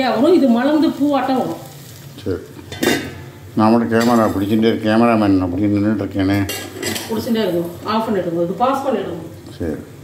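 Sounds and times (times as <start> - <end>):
steel kitchenware clattering: 2.7 - 3.2, 6.3 - 7.3.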